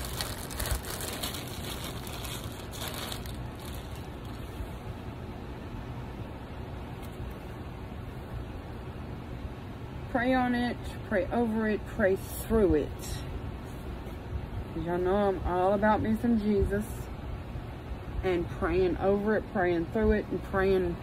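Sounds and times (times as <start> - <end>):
plastic bag crinkling: 0.0 - 4.6
low room hum: 0.0 - 21.0.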